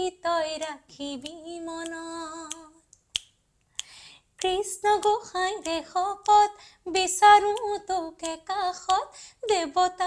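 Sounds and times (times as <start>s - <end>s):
finger snaps: 0.6s - 6.5s, 7.4s - 9.0s.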